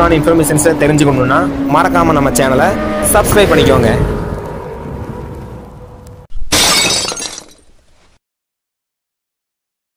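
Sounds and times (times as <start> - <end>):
glass shattering: 6.5 - 7.8.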